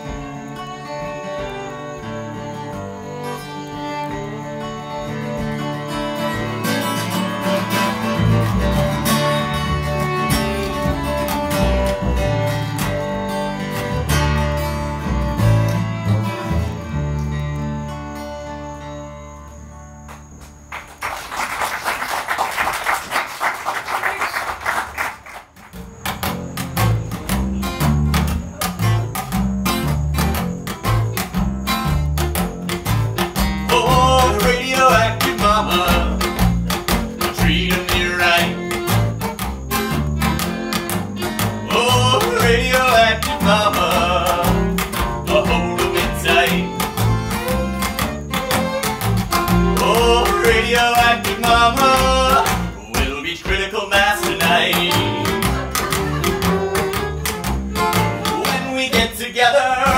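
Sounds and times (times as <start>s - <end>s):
upright bass notes: 0.0s - 19.8s, 26.2s - 59.9s
fiddle melody: 0.0s - 20.2s, 27.4s - 59.9s
strummed acoustic guitar: 0.0s - 20.3s, 25.6s - 59.9s
audience applause: 20.7s - 25.8s.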